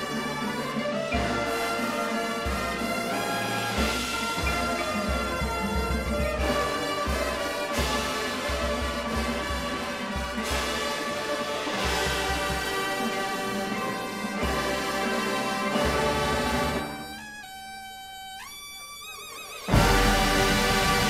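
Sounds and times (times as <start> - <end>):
brass playing held chords: 0.0 - 18.5, 19.7 - 21.0
percussion: 0.0 - 21.0.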